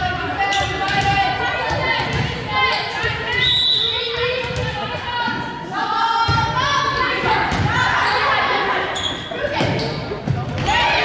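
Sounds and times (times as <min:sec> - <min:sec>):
voices echoing in gymnasium: 0:00.0 - 0:11.0.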